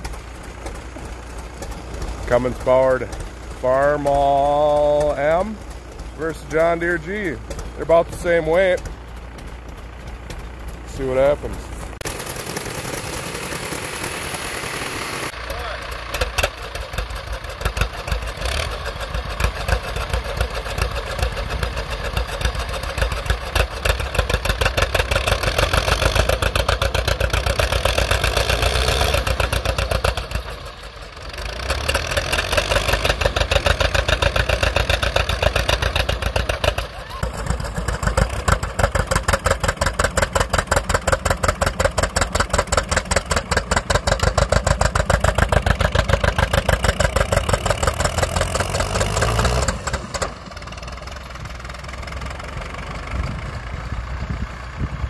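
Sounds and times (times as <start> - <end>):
tractor engines working under load: 0.0 - 55.0.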